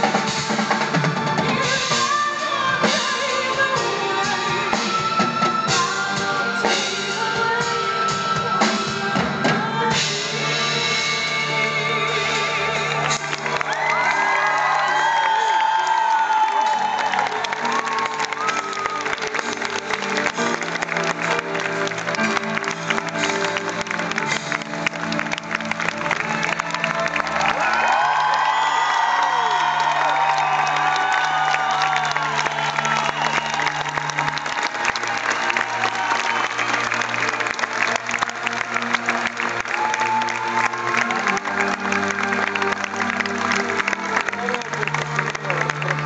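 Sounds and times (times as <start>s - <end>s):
audience applauding and cheering: 0.0s - 10.2s, 11.9s - 46.0s
shouts and whoops: 13.6s - 19.2s, 27.3s - 36.9s, 39.6s - 41.6s.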